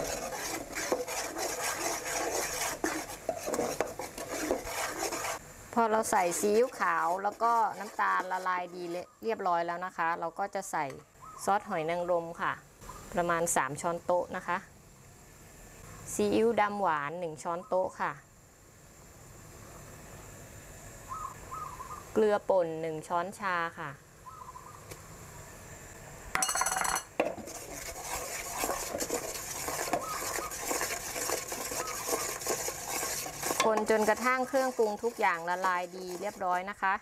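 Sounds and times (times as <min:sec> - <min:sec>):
metal spoon scraping metal pot: 0:00.0 - 0:05.4, 0:06.2 - 0:09.0, 0:26.4 - 0:36.9
sugar bubbling: 0:00.0 - 0:09.0, 0:26.4 - 0:37.0
faint hoot-like calls: 0:21.1 - 0:22.1, 0:24.2 - 0:24.9.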